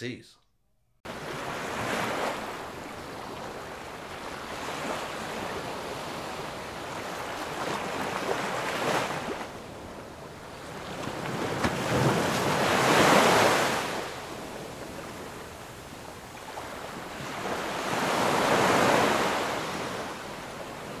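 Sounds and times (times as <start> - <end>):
ocean waves on sandy beach: 1.1 - 21.0.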